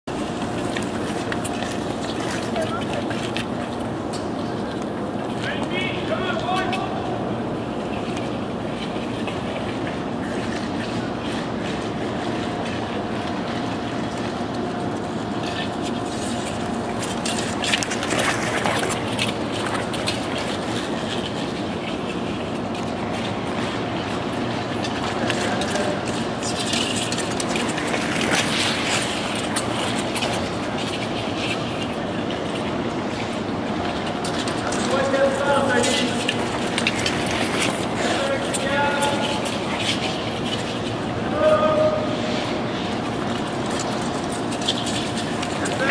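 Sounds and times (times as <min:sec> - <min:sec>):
ice arena hum: 0:00.1 - 0:45.9
skate blades scraping ice: 0:00.2 - 0:06.9, 0:07.7 - 0:45.9.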